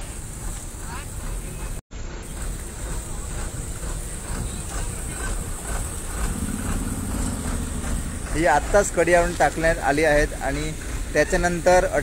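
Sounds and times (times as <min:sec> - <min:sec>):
diesel truck engine running: 0:00.0 - 0:12.0
pulsing low hum: 0:01.5 - 0:10.0.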